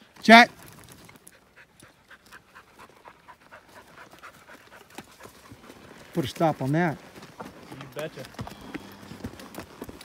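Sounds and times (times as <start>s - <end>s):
dog panting quickly: 1.1s - 6.2s.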